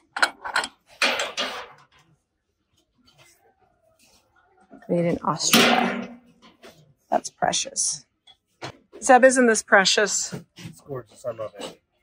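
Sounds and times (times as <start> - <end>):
items clattering into wire cart: 0.0 - 1.9.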